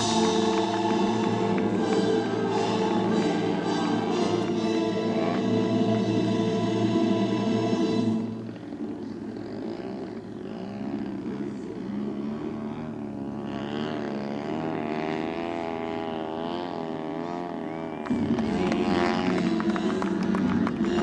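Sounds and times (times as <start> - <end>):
choir music: 0.0 - 8.5, 19.3 - 21.0
model airplane engine: 0.0 - 21.0.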